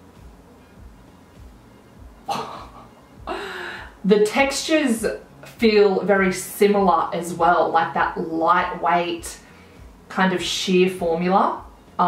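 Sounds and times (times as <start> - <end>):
woman gasping: 3.3 - 4.0.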